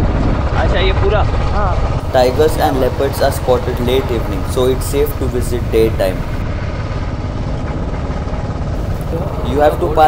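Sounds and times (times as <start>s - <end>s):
motorcycle engine rumbling: 0.4s - 10.0s.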